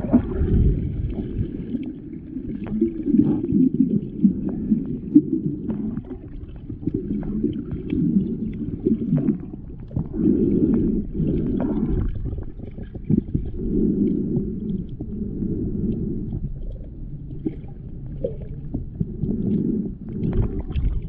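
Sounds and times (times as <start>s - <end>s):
muffled underwater water sloshing: 0.0s - 21.0s
small underwater clicks: 1.1s - 21.0s.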